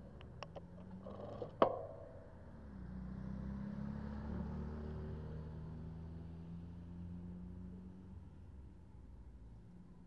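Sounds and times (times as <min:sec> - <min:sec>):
car driving past: 0:02.7 - 0:06.0.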